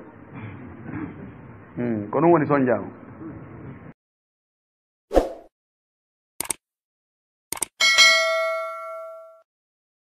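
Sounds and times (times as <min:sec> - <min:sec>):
notification bell ding: 0:07.8 - 0:09.5.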